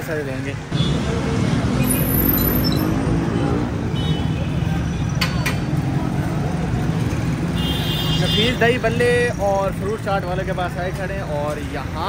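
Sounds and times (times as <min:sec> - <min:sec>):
traffic engine rumble: 0:00.0 - 0:12.0.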